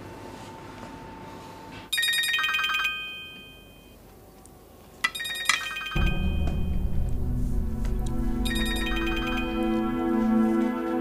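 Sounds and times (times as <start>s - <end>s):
mobile phone ringtone: 1.9s - 4.0s, 5.1s - 6.4s, 8.5s - 9.7s
background music: 6.0s - 11.0s.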